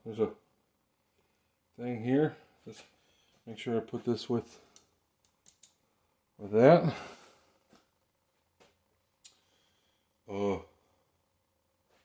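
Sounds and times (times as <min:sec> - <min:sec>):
faint clicks: 0:04.7 - 0:05.8.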